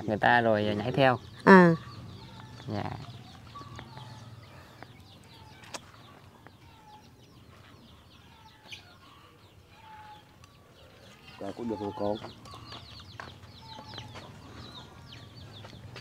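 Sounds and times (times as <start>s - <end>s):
chickens clucking: 0.8s - 16.0s.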